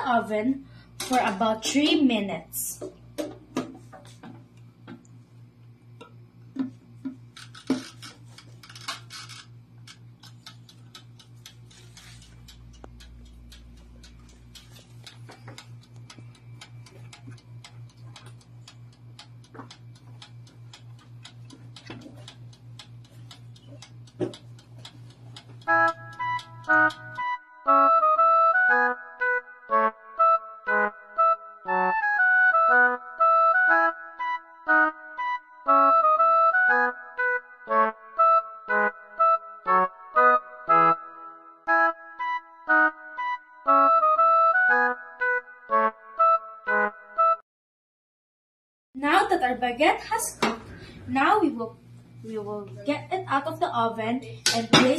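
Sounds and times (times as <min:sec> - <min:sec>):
oven timer ticking: 0:05.6 - 0:27.4.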